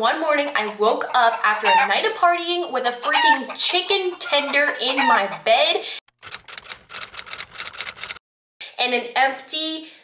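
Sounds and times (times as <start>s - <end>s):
typewriter keys striking: 6.2s - 8.2s.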